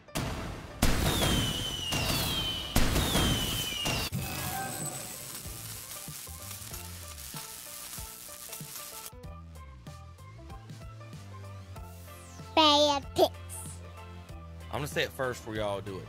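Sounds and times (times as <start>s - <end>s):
fireworks bangs and crackling: 0.1s - 9.1s
falling fireworks whistles: 0.8s - 9.1s.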